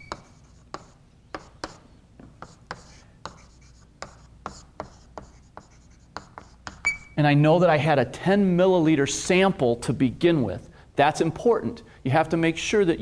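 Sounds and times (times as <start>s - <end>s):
chalk tapping and scraping on chalkboard: 0.0s - 6.9s.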